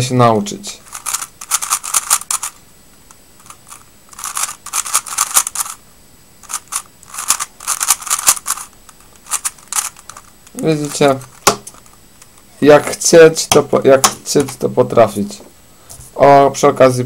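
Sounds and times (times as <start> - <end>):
puzzle cube clicking as turned: 0.9 - 2.6, 3.4 - 5.8, 6.4 - 12.4.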